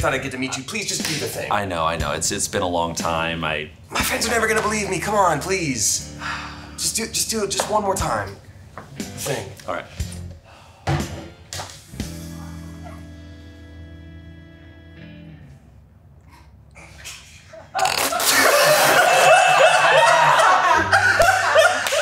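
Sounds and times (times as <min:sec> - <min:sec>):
people laughing loudly: 0:17.5 - 0:22.0.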